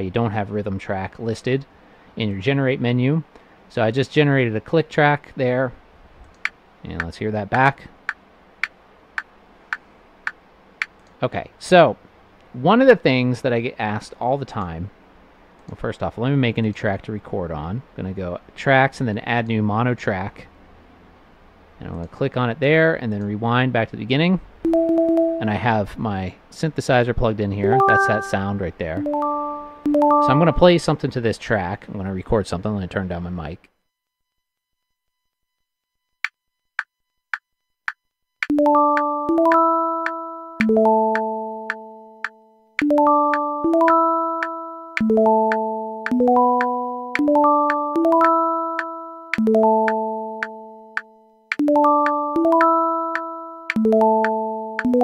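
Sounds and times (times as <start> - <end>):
metronome clicks: 37.9 - 55.0.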